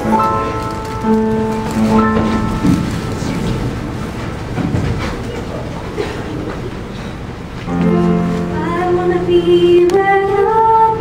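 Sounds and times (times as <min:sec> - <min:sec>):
people shuffling and rustling: 0:00.0 - 0:11.0.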